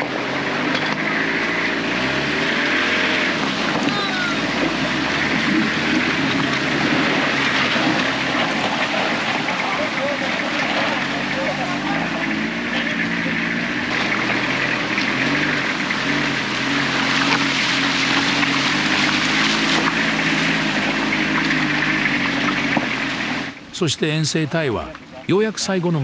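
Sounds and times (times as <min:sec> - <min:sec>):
van engine running: 0:00.0 - 0:26.0
water rushing and splashing: 0:02.0 - 0:23.4.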